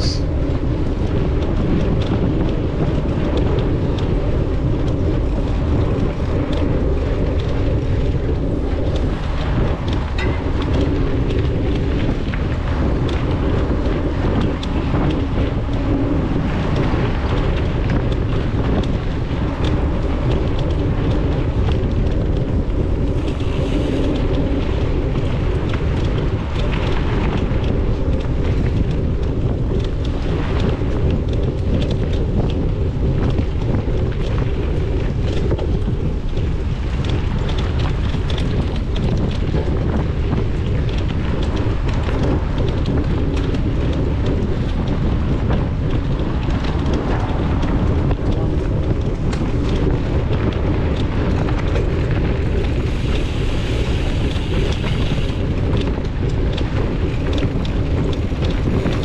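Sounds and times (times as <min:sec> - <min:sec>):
bike rattles and clicks: 0:00.0 - 0:59.0
bike tyre noise: 0:00.0 - 0:59.0
wind rumble on microphone: 0:00.0 - 0:59.0.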